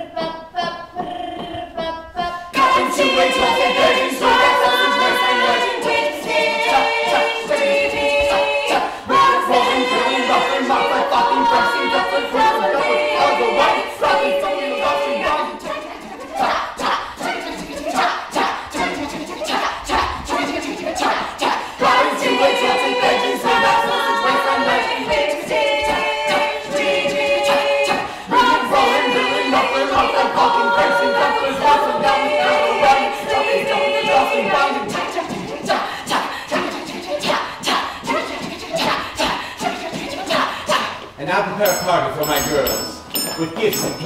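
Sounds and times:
choir singing: 0.0s - 42.9s.

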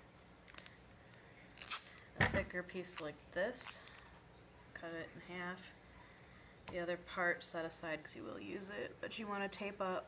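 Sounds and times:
duct tape ripping: 1.6s - 2.0s.

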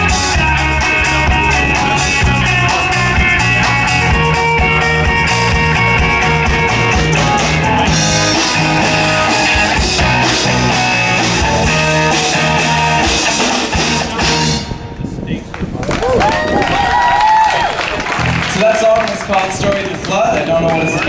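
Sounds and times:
drum kit beat: 0.0s - 14.7s
electric guitars holding chords: 0.0s - 15.2s.

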